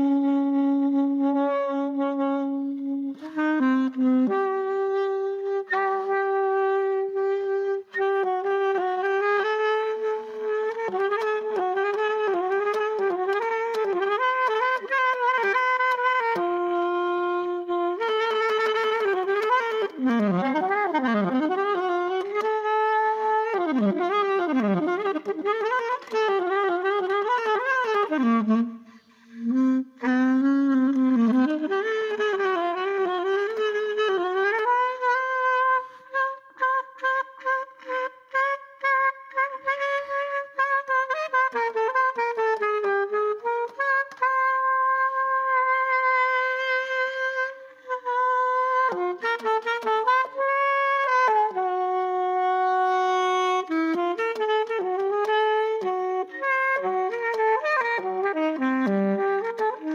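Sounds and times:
alto saxophone improvising: 0.0s - 59.9s.

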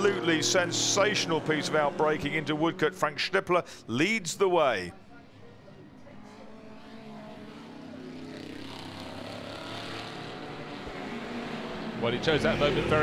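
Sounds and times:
racing car engines at full throttle: 0.0s - 4.6s, 5.2s - 13.0s.

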